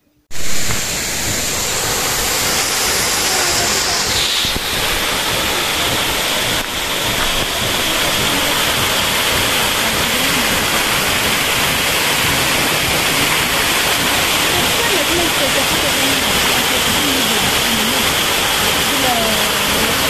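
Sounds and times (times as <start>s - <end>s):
waterfall rushing over boulders: 0.3s - 20.0s.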